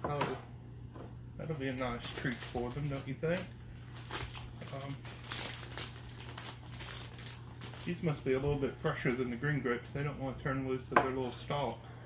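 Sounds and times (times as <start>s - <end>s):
plastic bag crinkling: 1.7s - 8.4s.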